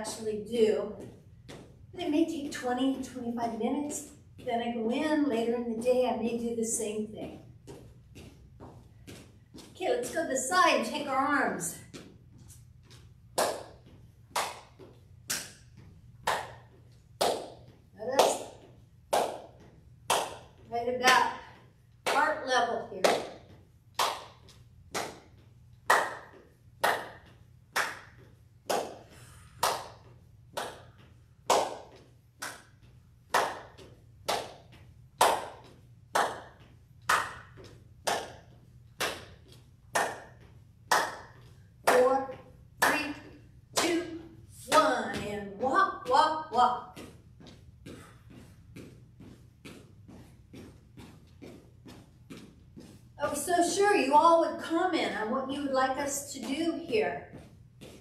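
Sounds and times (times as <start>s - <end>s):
sharp footstep taps: 0.0s - 53.8s, 54.5s - 58.0s.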